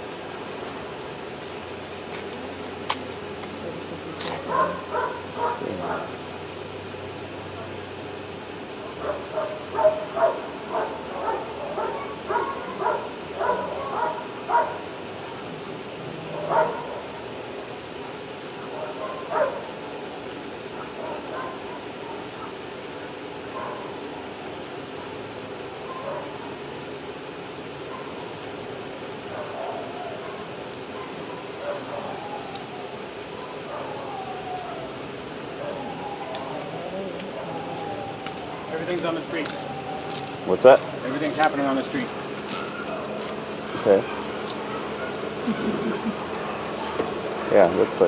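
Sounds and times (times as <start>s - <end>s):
dog barking: 4.4s - 6.1s, 8.9s - 14.9s, 16.3s - 17.2s, 18.7s - 19.7s, 20.8s - 22.6s, 23.5s - 23.9s, 25.8s - 26.5s, 27.9s - 28.3s, 29.3s - 32.2s, 33.3s - 34.8s.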